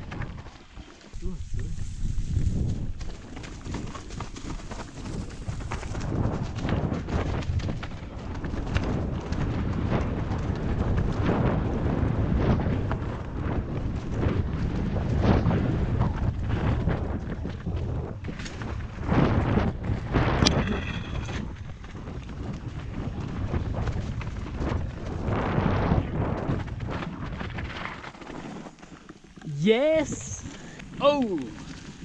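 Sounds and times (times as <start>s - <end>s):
tyre and wind rumble: 0.0s - 32.0s.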